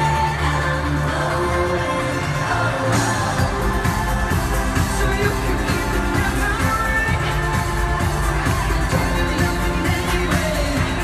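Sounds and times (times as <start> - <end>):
loud live pop music: 0.0 - 11.0.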